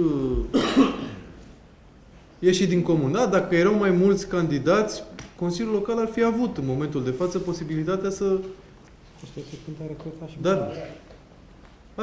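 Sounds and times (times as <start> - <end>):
man speaking: 0.0 - 0.7, 2.4 - 8.6, 9.2 - 11.1
man coughing: 0.5 - 1.4.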